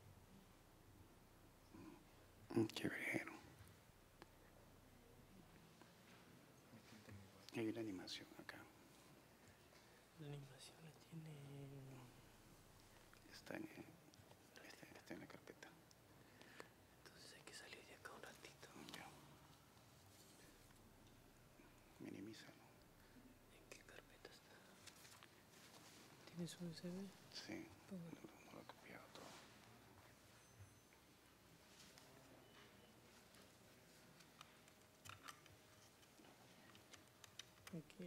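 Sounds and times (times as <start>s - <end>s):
faint whispering voices: 1.6s - 3.7s, 4.3s - 9.2s, 10.0s - 12.3s, 13.0s - 16.0s, 17.0s - 19.5s, 21.6s - 25.2s, 25.8s - 30.1s, 36.0s - 38.0s.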